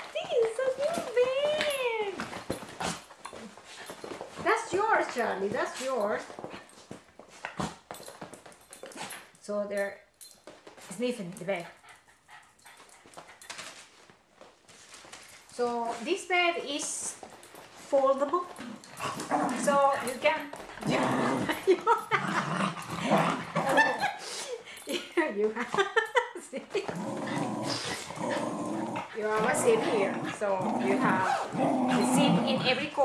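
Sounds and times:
dog bed rustling: 13.5 - 23.9
dogs sniffing: 27.2 - 33.0.

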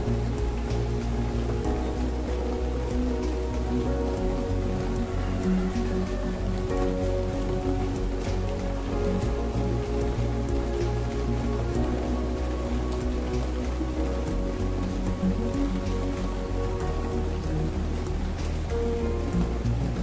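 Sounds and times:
slow music with bass line: 0.0 - 20.0
steady rain: 0.0 - 20.0
water dripping: 0.0 - 20.0.

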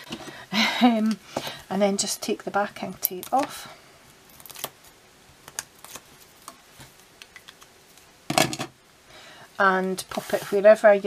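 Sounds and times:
tape liner peeling crackle: 4.3 - 8.1.

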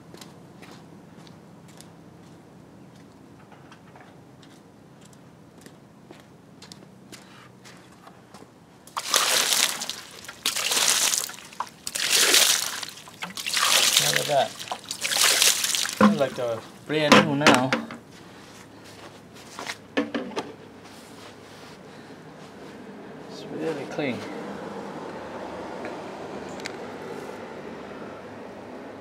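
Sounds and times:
faint water drips: 8.9 - 16.9
water splashing over car wheel: 8.9 - 17.7.

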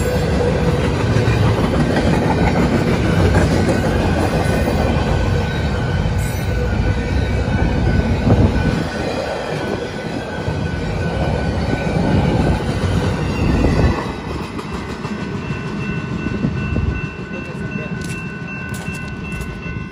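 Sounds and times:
train wheel squeal: 0.0 - 19.8
freight train rumbling: 0.0 - 19.9.

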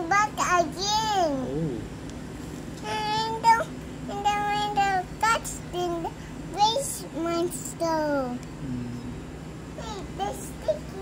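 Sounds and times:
child singing: 2.8 - 8.4, 9.8 - 11.0.

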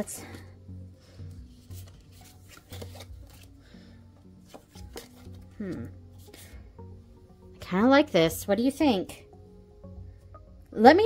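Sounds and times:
quiet background music: 0.0 - 11.0
cards tapping and rubbing on cloth: 1.6 - 3.5, 4.4 - 5.8.

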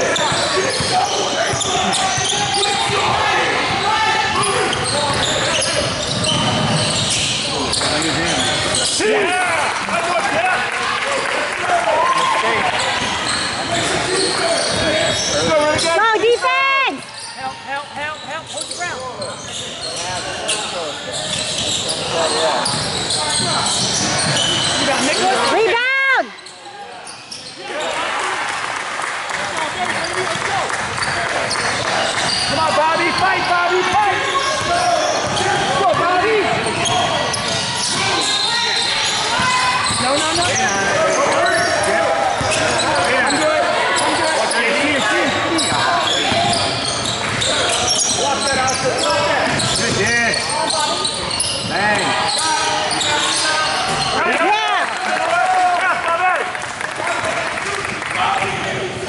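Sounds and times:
indistinct shouts echoing: 0.0 - 18.3, 21.6 - 58.8
basketball dribbling: 0.2 - 8.8, 29.8 - 38.4.

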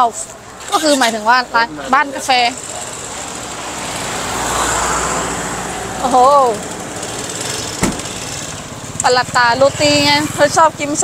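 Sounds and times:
vehicle passing: 1.4 - 11.0
short sharp knock: 7.8 - 8.2.

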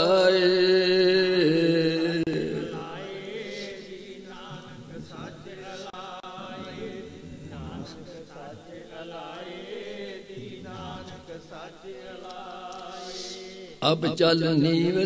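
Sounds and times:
voices chanting: 2.3 - 14.2.

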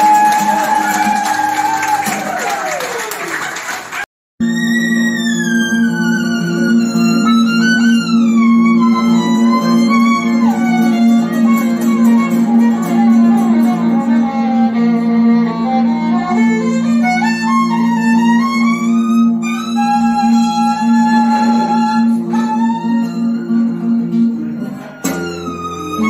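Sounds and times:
acoustic guitar playing: 0.0 - 2.4, 4.4 - 26.0
held low drone note: 4.4 - 17.0
fiddle melody: 4.4 - 26.0.

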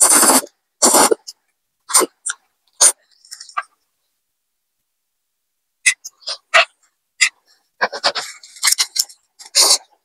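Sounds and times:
slurping noodles: 0.0 - 1.3.

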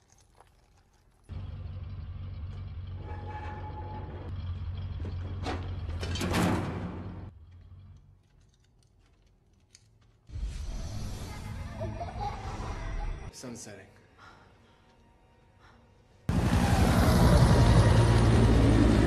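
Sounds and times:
vehicle engine rumble: 1.3 - 8.4, 16.3 - 19.0.

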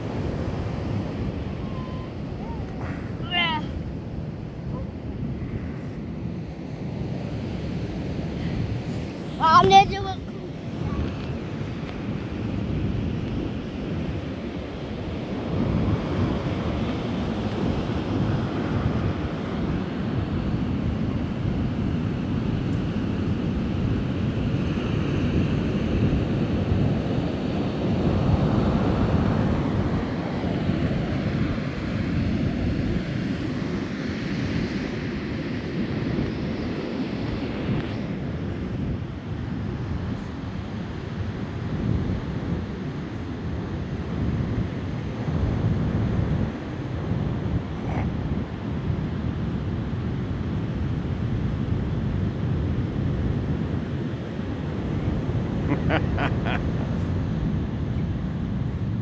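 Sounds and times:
gusty wind buffeting microphone: 0.0 - 59.0
ocean surf: 0.0 - 59.0.

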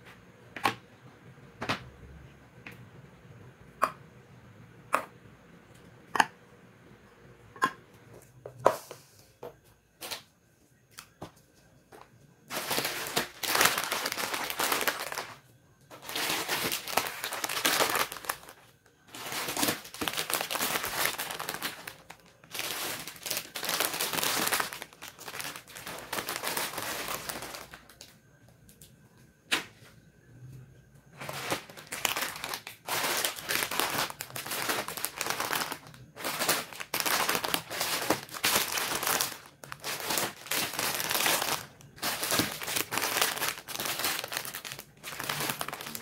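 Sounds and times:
plastic packets crinkling: 11.9 - 28.2, 31.1 - 46.0.

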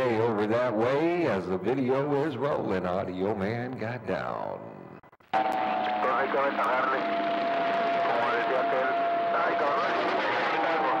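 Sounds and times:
carrier tone whistle: 5.3 - 10.0.

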